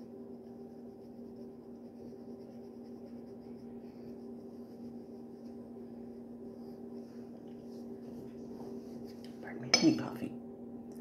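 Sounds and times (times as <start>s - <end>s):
faint steady hum: 0.0s - 11.0s
ceramic mug clinking on surface: 9.7s - 10.0s.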